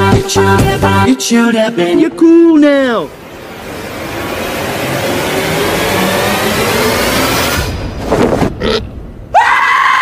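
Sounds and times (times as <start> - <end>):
faint rising tones: 3.0 - 8.1
loud rushing noise: 3.0 - 9.3.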